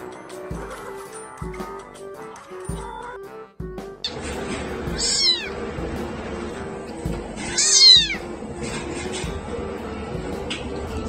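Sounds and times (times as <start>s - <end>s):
kitten meowing: 4.9s - 5.6s, 7.5s - 8.2s.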